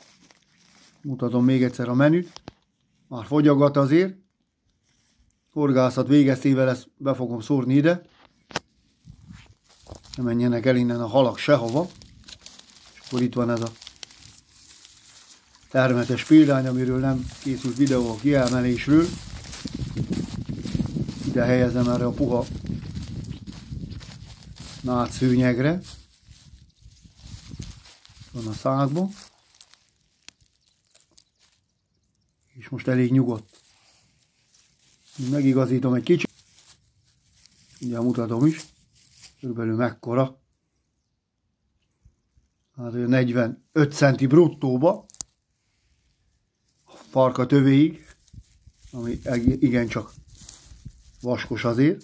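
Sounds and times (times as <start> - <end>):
faint low rustling: 9.0 - 31.5.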